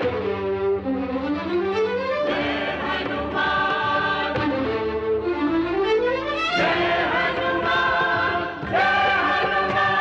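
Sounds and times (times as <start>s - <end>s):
orchestral accompaniment: 0.0s - 10.0s
choir singing long held notes: 2.3s - 4.6s, 6.6s - 10.0s.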